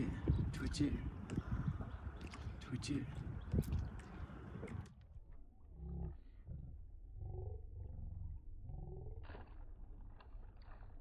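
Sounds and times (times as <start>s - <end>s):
deep slowed-down rumbles: 0.0s - 11.0s.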